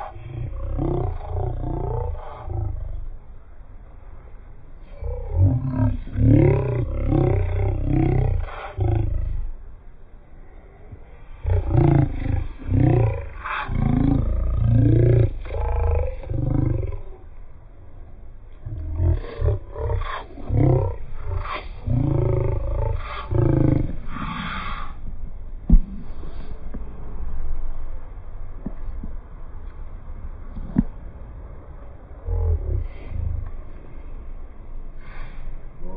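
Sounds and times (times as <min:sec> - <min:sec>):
man roaring: 0:05.0 - 0:09.5, 0:11.5 - 0:17.1, 0:18.7 - 0:24.5.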